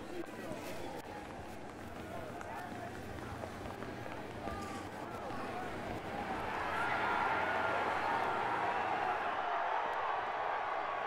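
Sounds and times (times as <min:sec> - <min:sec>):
distant indistinct voices: 0:00.0 - 0:09.3
low background noise: 0:00.0 - 0:11.0.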